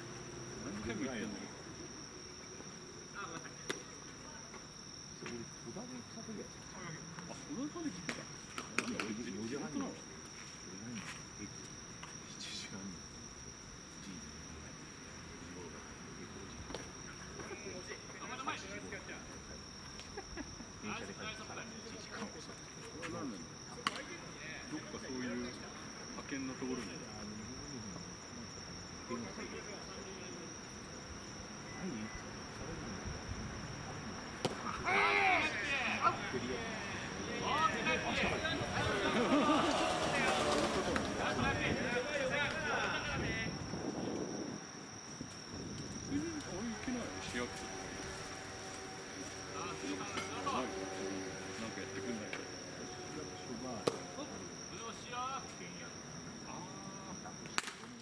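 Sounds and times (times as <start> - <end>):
night insects trilling: 0.0 - 58.0
distant voices calling: 33.8 - 43.8.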